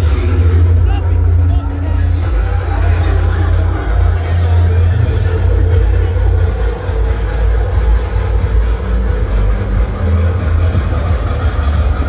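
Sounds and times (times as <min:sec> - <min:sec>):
muffled music from speakers: 0:00.0 - 0:12.0.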